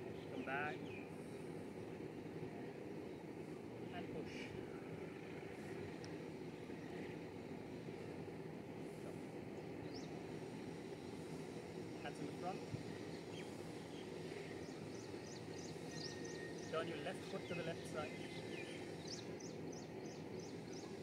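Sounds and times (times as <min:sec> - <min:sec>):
low outdoor background noise: 0:00.0 - 0:21.0.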